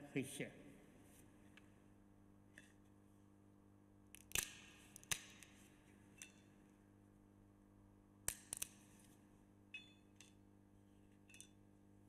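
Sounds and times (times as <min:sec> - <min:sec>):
faint electrical hum: 0:00.0 - 0:12.0.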